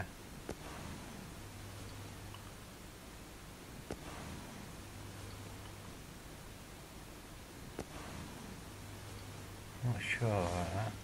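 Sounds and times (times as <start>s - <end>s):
steady hiss with low hum: 0.0s - 11.0s.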